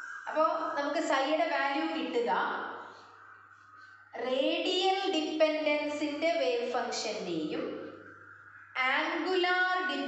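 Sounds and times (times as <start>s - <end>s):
woman speaking in sing-song tones: 0.3s - 2.7s, 4.2s - 7.8s, 8.8s - 10.0s.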